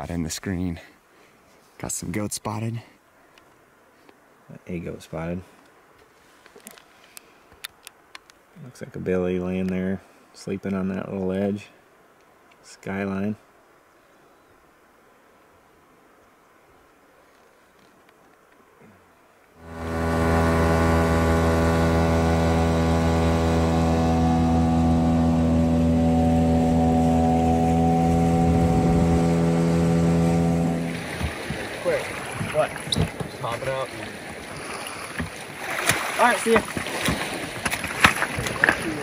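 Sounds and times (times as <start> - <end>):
small outboard motor running: 19.6 - 32.4.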